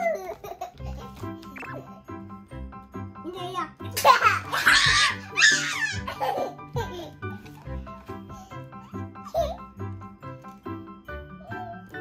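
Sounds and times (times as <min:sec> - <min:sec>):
light background music: 0:00.0 - 0:12.0
toddler shrieking laughter: 0:04.1 - 0:06.6.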